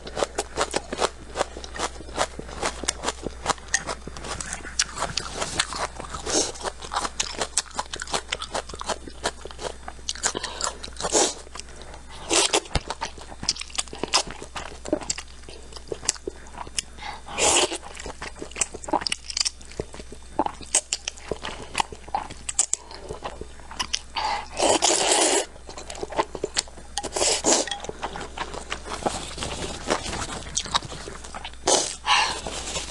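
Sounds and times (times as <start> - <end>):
wet chewing: 0.0 - 16.9.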